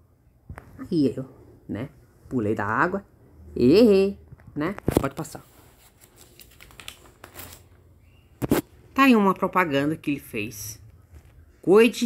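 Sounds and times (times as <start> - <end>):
paper page turning: 4.9 - 7.8.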